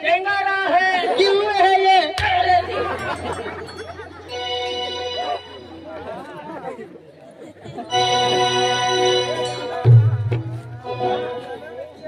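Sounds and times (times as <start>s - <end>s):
voices chattering: 0.8s - 12.0s
band playing held notes: 2.4s - 6.4s, 7.9s - 12.0s.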